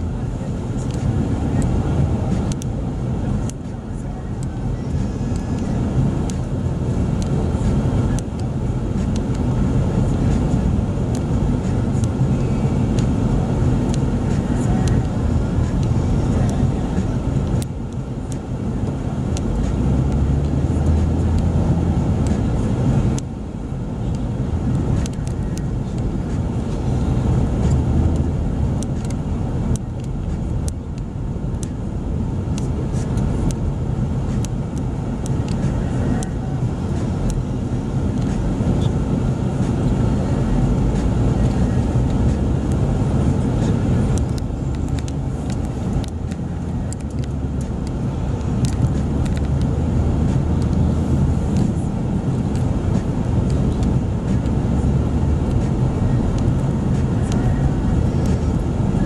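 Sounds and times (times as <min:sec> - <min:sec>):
car engine and road noise: 0:00.0 - 0:59.0.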